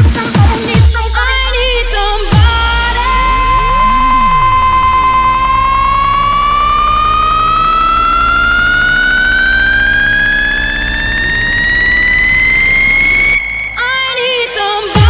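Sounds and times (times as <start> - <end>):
low synth bass: 0.8 - 14.2
rising synth tone: 2.2 - 15.0.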